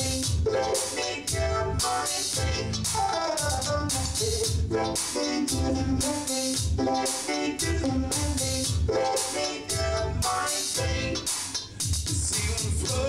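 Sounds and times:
steady drum beat: 0.0 - 8.9, 9.7 - 13.0
synthesizer chords: 0.0 - 11.7.

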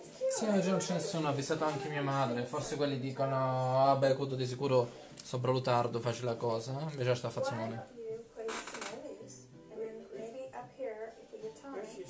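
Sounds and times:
music: 0.0 - 12.0
voice: 7.2 - 12.0.

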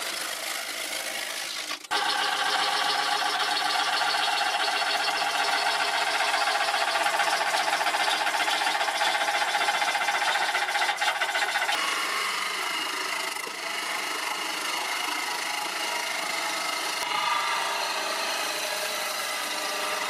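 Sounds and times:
wood lathe cutting with chatter: 0.0 - 20.0.

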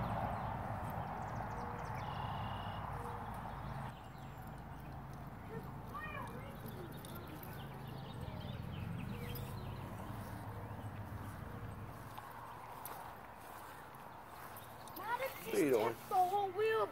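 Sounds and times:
footsteps on grass: 6.0 - 16.9.

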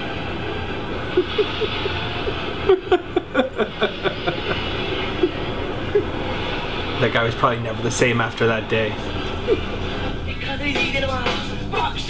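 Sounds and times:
person laughing: 0.9 - 6.3, 9.1 - 10.1.

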